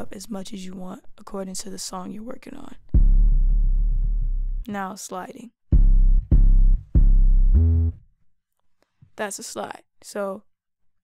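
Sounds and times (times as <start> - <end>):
deep sub-bass notes sliding: 2.9 - 4.7, 5.8 - 8.0.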